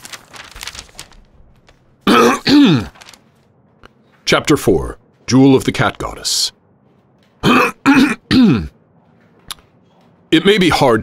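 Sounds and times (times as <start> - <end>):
man clearing his throat: 2.0 - 3.0, 7.4 - 8.8.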